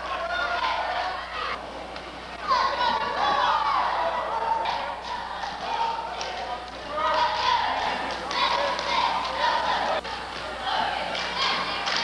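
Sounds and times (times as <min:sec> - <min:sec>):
spectators shouting: 0:02.4 - 0:10.0.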